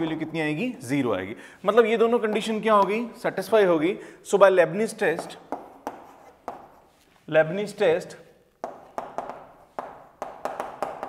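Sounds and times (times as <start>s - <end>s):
chalk tapping on a chalkboard: 5.2s - 7.0s, 8.6s - 11.0s.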